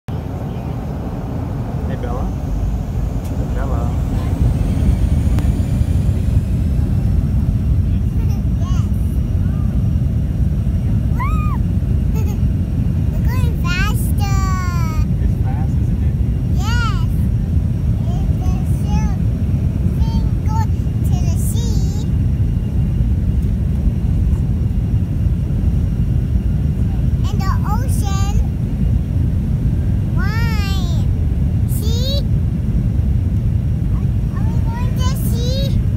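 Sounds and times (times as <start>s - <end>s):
faint high whine: 0.1s - 13.7s
aircraft engine rumble: 0.1s - 35.9s.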